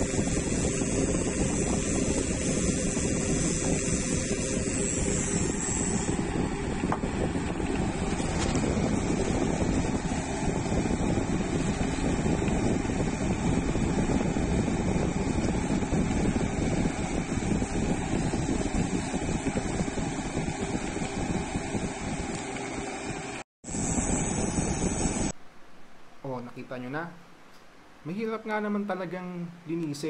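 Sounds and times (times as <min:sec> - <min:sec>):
wind buffeting microphone: 0:00.0 - 0:22.3.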